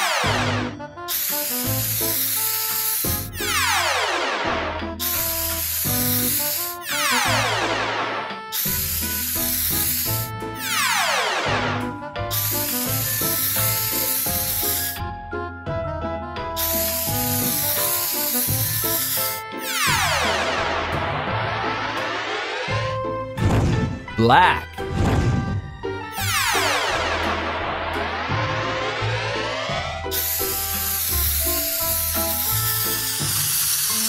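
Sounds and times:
children's music: 0:00.0 - 0:34.0
aerosol spray hiss: 0:01.1 - 0:03.2, 0:16.6 - 0:19.4, 0:30.2 - 0:34.0
cartoon falling pitch swoop: 0:10.6 - 0:11.8, 0:19.6 - 0:22.9, 0:26.2 - 0:31.0.

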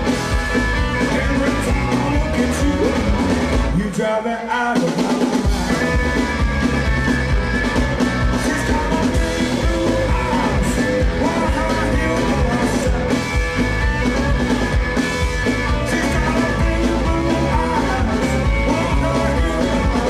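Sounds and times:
blues-rock band playing: 0:00.0 - 0:20.0
male lead vocal: 0:00.9 - 0:06.2, 0:08.2 - 0:13.4, 0:15.6 - 0:20.0.

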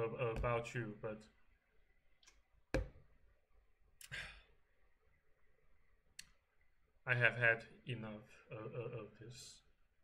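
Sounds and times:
man sighing: 0:04.0 - 0:04.5
faint click: 0:06.1 - 0:06.4.

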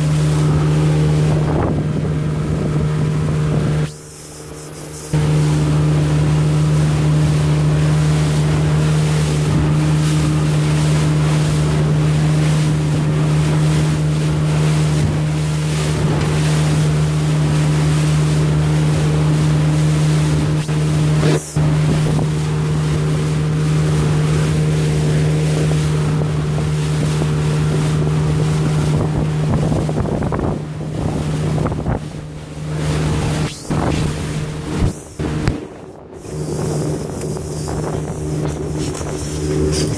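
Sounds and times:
wind buffeting microphone: 0:00.0 - 0:04.0, 0:21.6 - 0:39.9
outboard motor humming: 0:00.0 - 0:39.9
rushing water: 0:00.0 - 0:39.9.

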